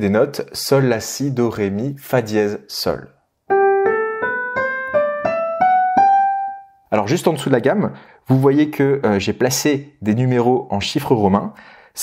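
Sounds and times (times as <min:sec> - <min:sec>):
piano playing a rising scale: 0:03.5 - 0:06.8.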